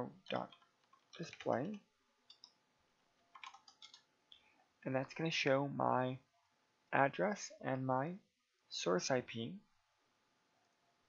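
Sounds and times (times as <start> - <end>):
faint computer keyboard keystrokes: 0.3 - 2.6, 3.3 - 4.1.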